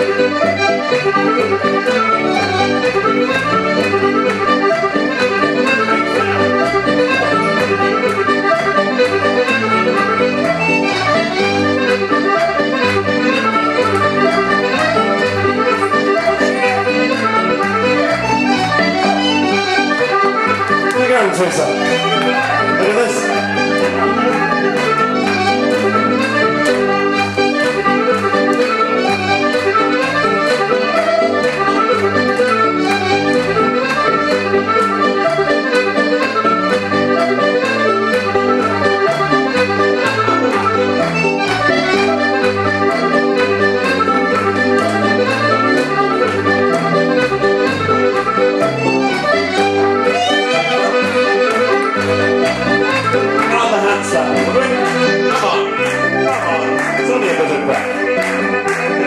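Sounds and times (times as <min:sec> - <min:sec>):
accordion dance music: 0:00.0 - 0:59.0.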